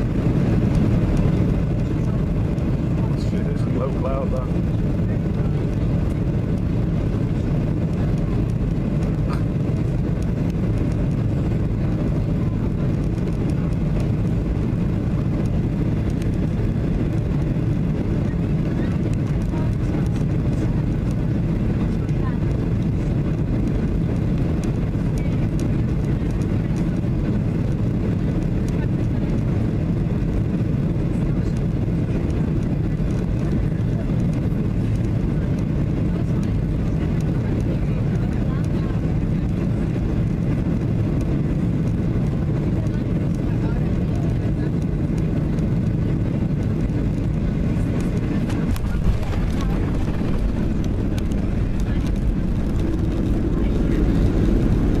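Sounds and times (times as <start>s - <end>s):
airflow over wing flaps: 0.0s - 55.0s
jet engines: 0.0s - 55.0s.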